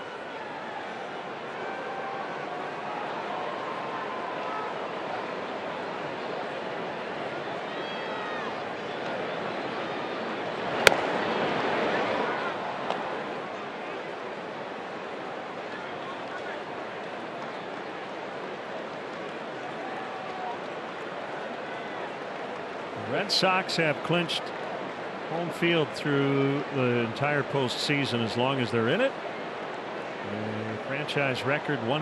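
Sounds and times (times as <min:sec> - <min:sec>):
baseball popping into mitt: 0:10.8 - 0:11.1
crowd murmur: 0:15.6 - 0:32.0.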